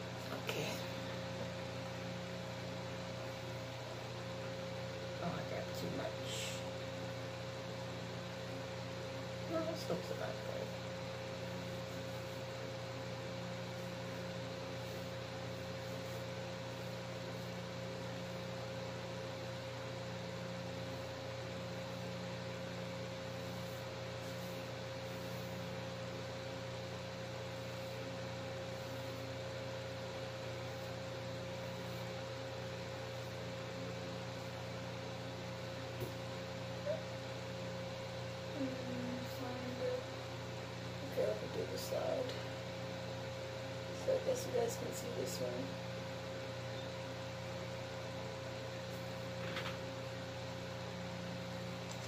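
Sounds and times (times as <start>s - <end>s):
steady background hum: 0.0s - 52.0s.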